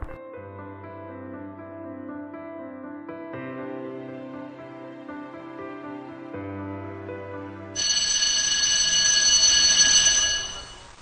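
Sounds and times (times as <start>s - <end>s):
soft background music: 0.0s - 10.6s
bright bell-like ringing: 7.8s - 11.0s.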